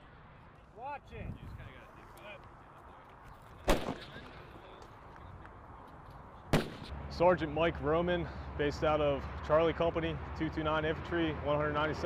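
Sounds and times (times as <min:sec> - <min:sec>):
sniper rifle shots: 0:03.6 - 0:04.2, 0:06.5 - 0:06.9.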